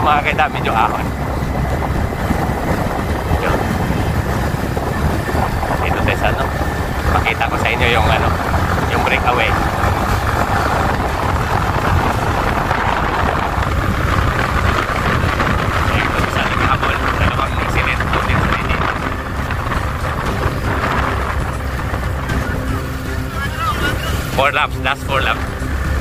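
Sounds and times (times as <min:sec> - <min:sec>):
motorcycle engine running: 0:00.0 - 0:26.0
wind rushing on microphone: 0:00.0 - 0:26.0.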